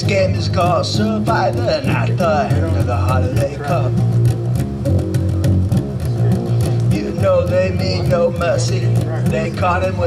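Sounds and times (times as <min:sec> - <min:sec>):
electric bass guitar line: 0:00.0 - 0:10.0
steady drum beat: 0:00.0 - 0:10.0.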